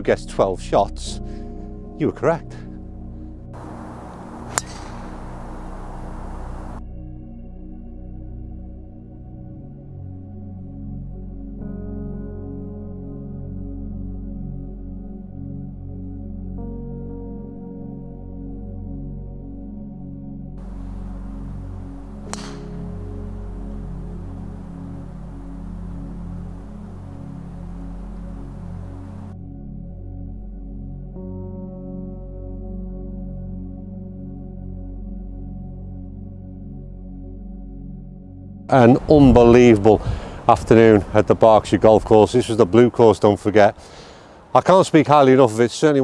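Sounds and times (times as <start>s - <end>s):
soft background music: 0.0s - 43.8s
golf club striking ball: 3.6s - 6.8s, 20.6s - 29.3s
steady hiss: 3.6s - 6.8s, 20.6s - 29.3s.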